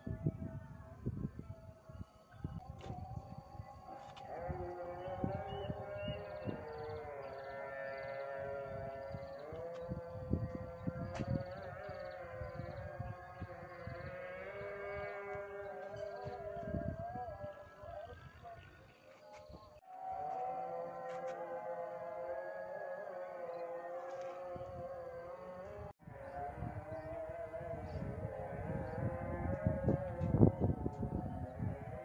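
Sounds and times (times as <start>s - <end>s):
wind buffeting microphone: 0.0s - 19.8s, 24.4s - 32.0s.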